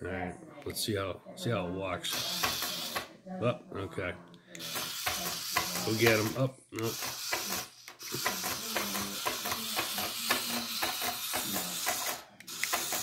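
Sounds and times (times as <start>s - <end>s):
toy motor and legs clicking: 2.0s - 3.1s, 4.6s - 13.0s.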